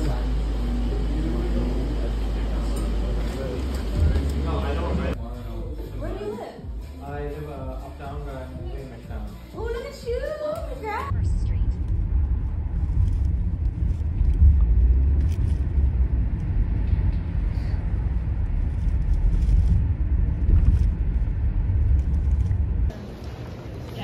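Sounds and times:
vehicle rumble inside cabin: 11.1s - 22.9s.

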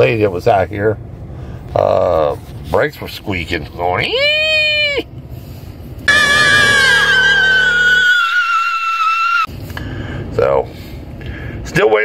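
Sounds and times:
brakes squealing: 6.1s - 9.0s.

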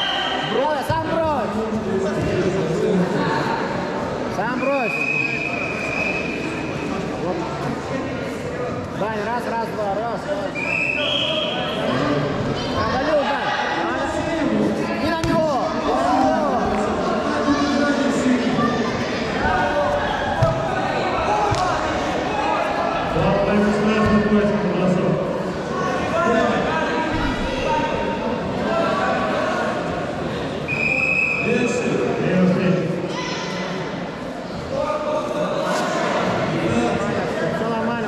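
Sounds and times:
voices echoing in a hall: 0.0s - 38.0s.

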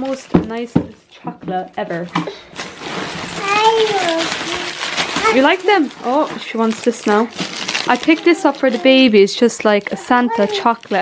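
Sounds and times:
rustling handling noise: 0.0s - 11.0s
toddler high-pitched vocalising: 3.4s - 5.4s.

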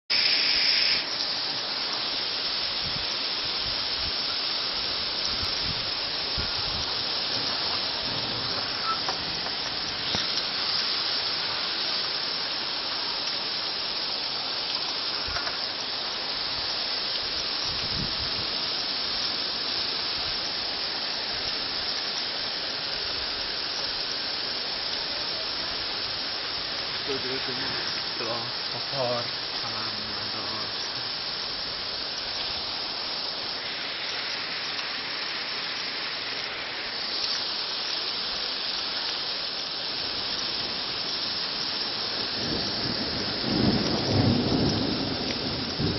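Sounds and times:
torrential rain pouring: 0.1s - 45.9s.

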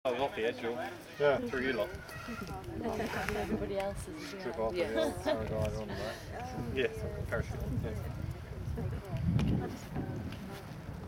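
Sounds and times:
indistinct chatter: 0.1s - 11.0s.

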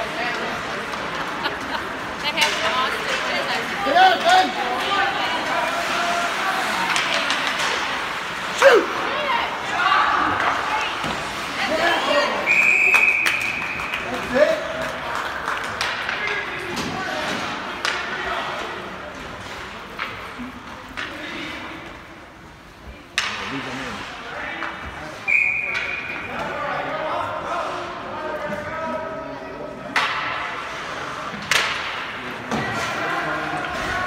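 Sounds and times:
spectators talking and calling: 0.0s - 34.0s
hockey sticks and puck knocks: 0.2s - 8.6s, 13.0s - 21.3s, 23.1s - 23.6s, 29.9s - 34.0s
referee whistle: 12.4s - 13.8s, 25.3s - 26.1s.

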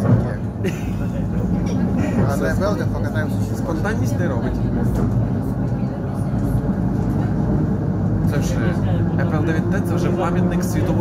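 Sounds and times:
train rumble from inside carriage: 0.0s - 11.0s.

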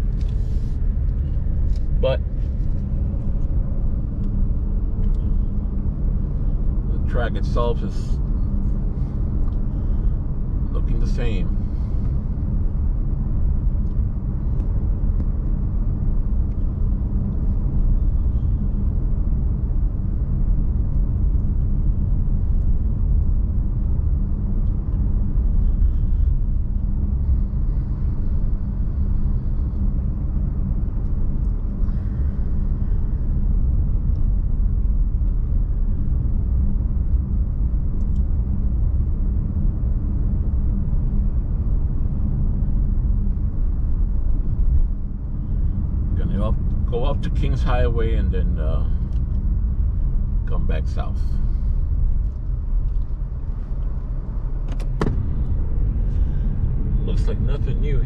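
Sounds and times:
car interior road rumble: 0.0s - 58.0s.

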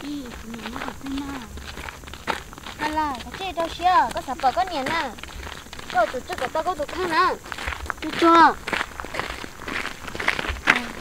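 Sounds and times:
footsteps on gravel road: 0.0s - 11.0s.

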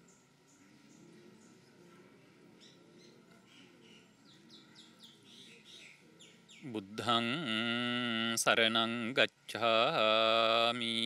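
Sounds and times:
faint bird chirps: 0.0s - 6.8s.

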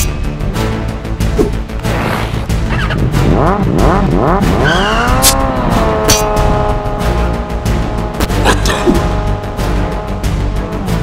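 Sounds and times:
background music: 0.0s - 11.0s
motorcycle engine revving: 1.4s - 11.0s.

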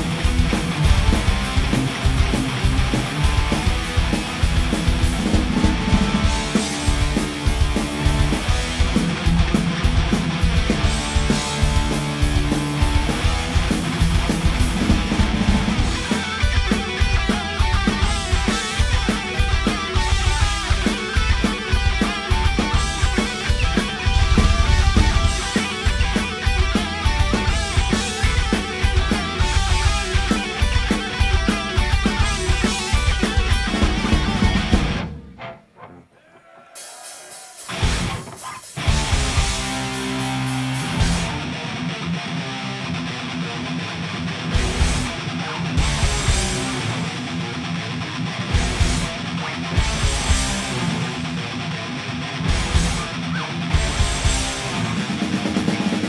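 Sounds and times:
heavy metal band playing: 0.0s - 56.0s.

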